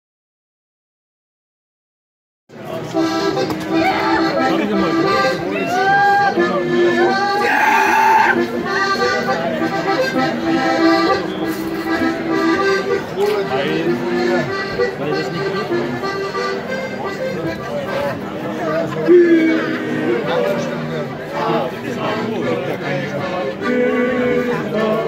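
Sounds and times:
accordion folk dance music: 2.5s - 25.0s.

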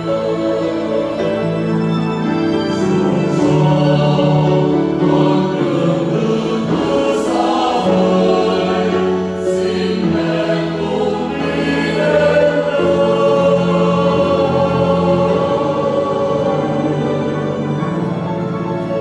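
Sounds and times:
mixed choir singing a hymn: 0.0s - 19.0s.

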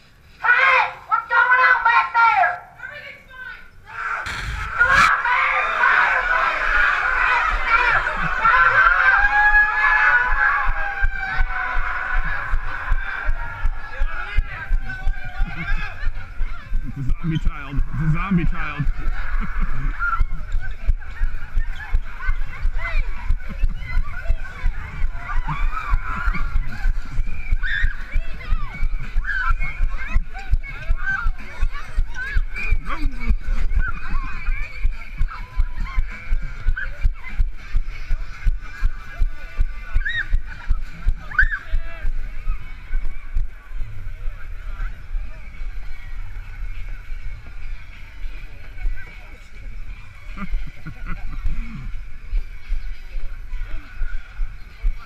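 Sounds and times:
high squeals and shrieks: 3.9s - 7.8s
camera thumping with running strides: 6.2s - 43.6s
footsteps jogging on concrete steps: 9.4s - 42.2s.

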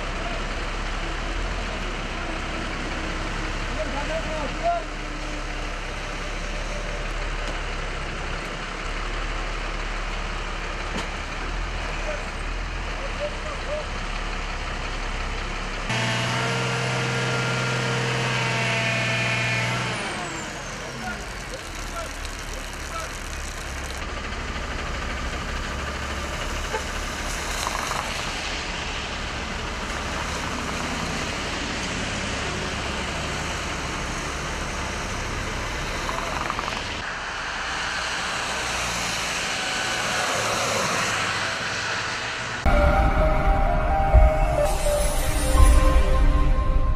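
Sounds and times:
traffic on a wet highway: 0.0s - 42.7s
steady pitched tone: 42.6s - 46.9s.

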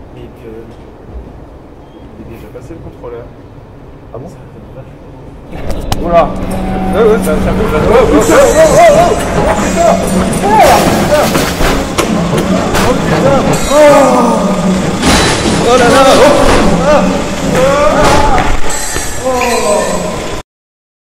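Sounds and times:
steady low hum: 0.0s - 19.2s
people talking: 0.1s - 0.8s, 5.6s - 11.6s, 12.6s - 14.6s, 15.5s - 18.6s, 19.2s - 20.2s.

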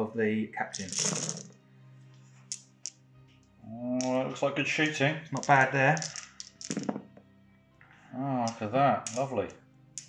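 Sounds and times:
plastic dice rattling: 0.7s - 1.5s, 5.4s - 7.0s, 8.5s - 9.3s.

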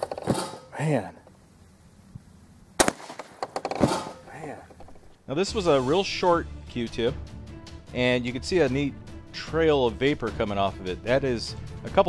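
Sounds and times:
sharp crack: 0.0s - 0.8s, 2.8s - 5.2s
shotgun firing: 0.1s - 0.7s, 2.8s - 4.4s.

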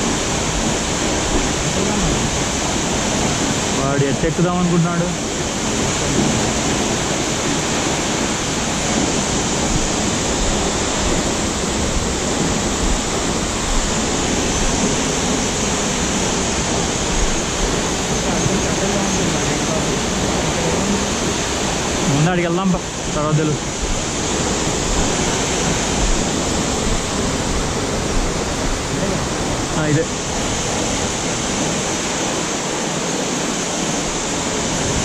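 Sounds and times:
waterfall rushing: 0.0s - 35.0s.

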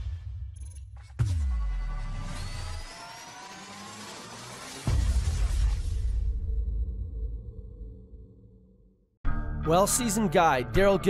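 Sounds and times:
rising riser whoosh: 1.4s - 6.1s.

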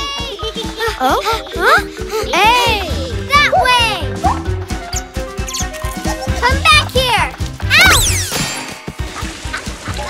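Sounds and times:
squeaky cartoon voice: 7.7s - 8.3s.

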